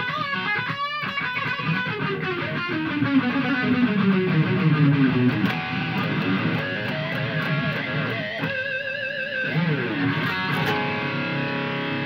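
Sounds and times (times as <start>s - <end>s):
electric guitar lead with vibrato: 0.0s - 12.0s.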